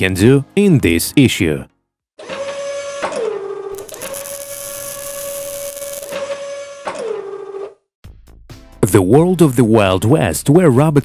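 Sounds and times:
loud hiss: 0:03.8 - 0:06.2.

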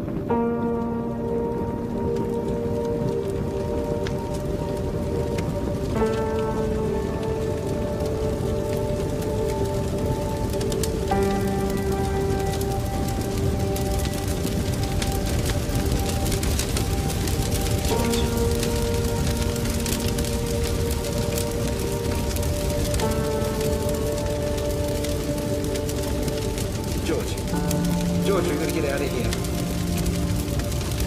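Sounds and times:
film score of held chords: 0:00.0 - 0:31.0
large fire crackling: 0:00.0 - 0:31.0.

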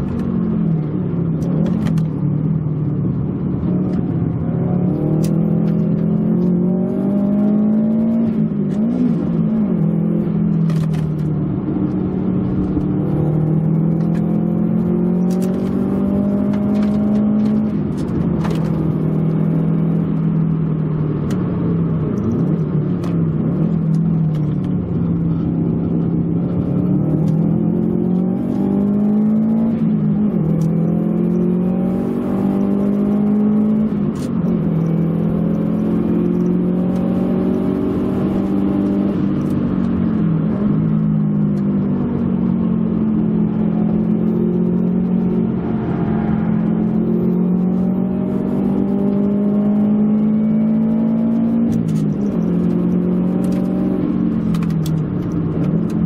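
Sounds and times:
car engine revving from inside cabin: 0:00.0 - 0:56.0.

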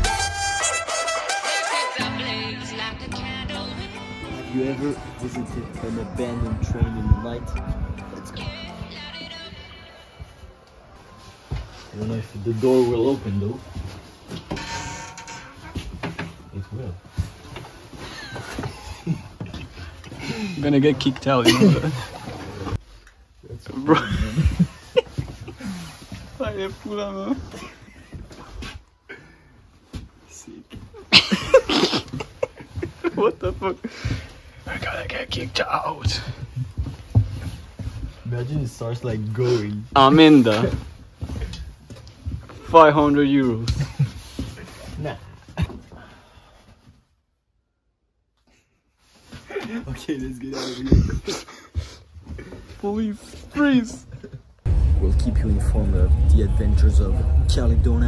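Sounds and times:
man speaking: 0:04.3 - 0:08.5
footsteps and knocks climbing aboard: 0:10.2 - 0:22.9, 0:24.2 - 0:47.0
high falling squeak: 0:14.5 - 0:15.9
young man laughing: 0:21.4 - 0:22.5, 0:24.0 - 0:25.8, 0:31.0 - 0:33.4, 0:50.6 - 0:51.7.

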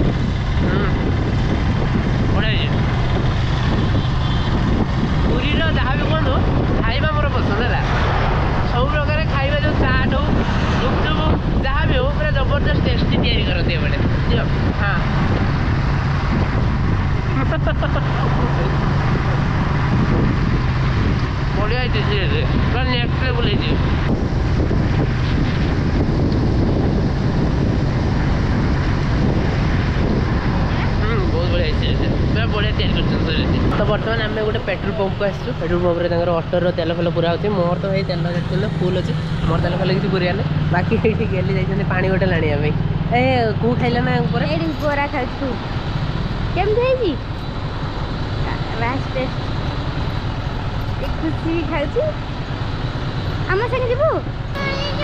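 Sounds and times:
motorcycle engine hum: 0:00.0 - 0:55.0
wind buffeting microphone: 0:00.0 - 0:55.0.

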